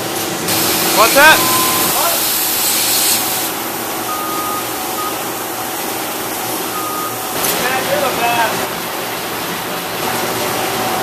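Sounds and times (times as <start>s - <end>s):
machinery running: 0.0s - 11.0s
compressed air hissing: 0.5s - 3.8s
short faint beeps: 1.4s - 2.0s, 4.1s - 5.2s, 6.7s - 7.2s.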